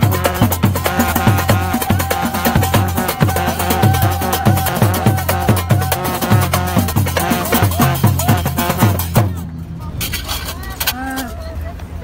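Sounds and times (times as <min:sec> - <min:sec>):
drumming: 0:00.0 - 0:09.4
crowd voices: 0:00.0 - 0:12.0.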